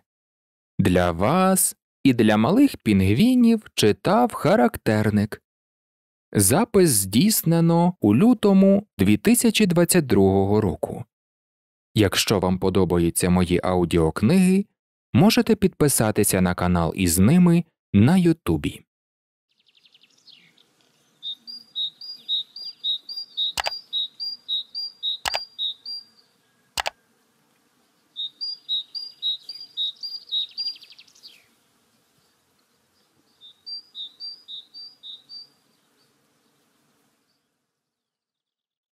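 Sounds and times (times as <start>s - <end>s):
small bird chirping: 19.5s - 27.0s, 27.8s - 31.6s, 32.2s - 38.6s
sharp clicks: 23.5s - 23.8s, 25.2s - 25.5s, 26.8s - 27.0s.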